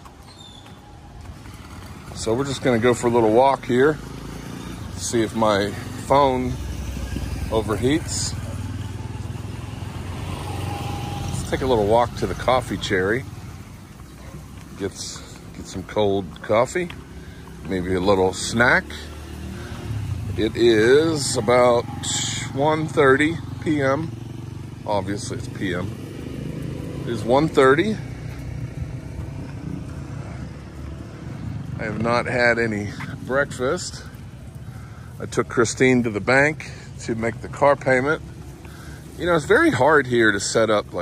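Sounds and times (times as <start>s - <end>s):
street traffic rumble: 0.0s - 41.0s
motorcycle engine running: 0.1s - 41.0s.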